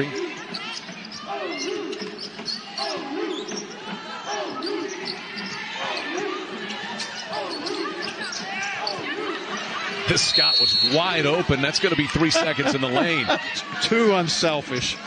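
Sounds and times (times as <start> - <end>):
hum of voices in arena: 0.0 - 15.0.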